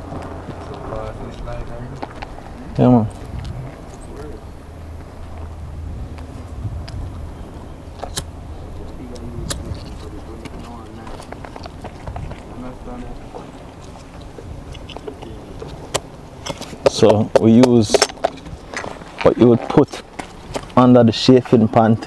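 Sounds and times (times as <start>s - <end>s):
low steady rumble: 0.0s - 19.7s
faint voices: 0.0s - 20.1s.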